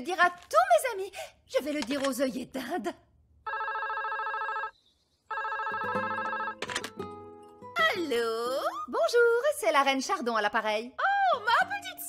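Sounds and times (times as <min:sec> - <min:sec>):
telephone ringing: 0:03.4 - 0:07.0.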